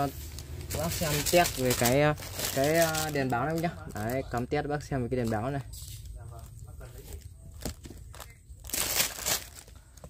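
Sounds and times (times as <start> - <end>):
plastic rustle: 0.0 - 10.0
plastic wrapping crinkling: 0.0 - 10.0.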